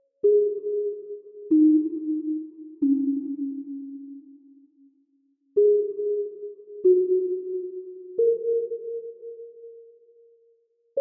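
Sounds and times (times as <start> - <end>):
slow music of held notes: 0.0 - 11.0.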